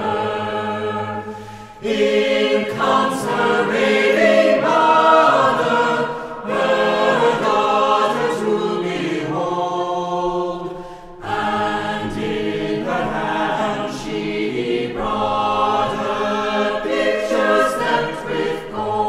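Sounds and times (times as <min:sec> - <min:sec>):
small choir singing: 0:00.0 - 0:19.0.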